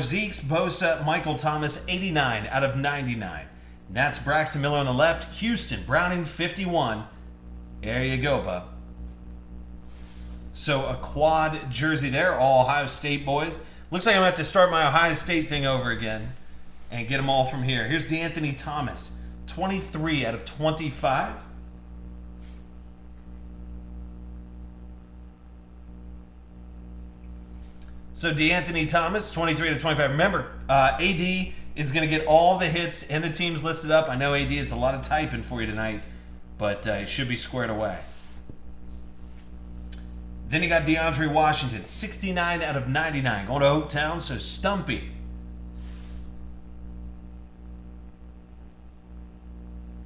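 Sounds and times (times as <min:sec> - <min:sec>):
low electrical hum: 0:00.0 - 0:50.0
soft rustle: 0:15.9 - 0:17.1, 0:38.0 - 0:39.9, 0:45.7 - 0:46.4
faint brief hiss: 0:45.7 - 0:46.4.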